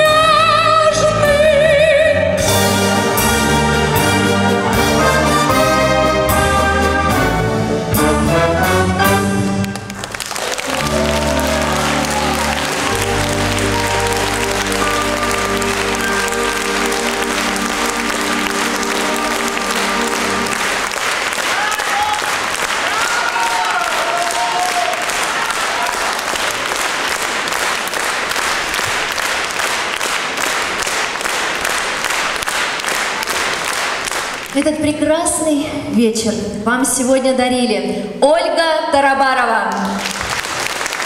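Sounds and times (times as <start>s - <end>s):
brass band holding chord: 2.4s - 9.9s, 10.6s - 21.2s
audience applause: 9.5s - 34.6s, 39.8s - 41.0s.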